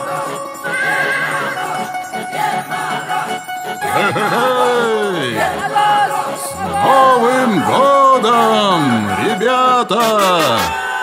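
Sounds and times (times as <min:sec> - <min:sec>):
upbeat dance music: 0:03.2 - 0:11.0.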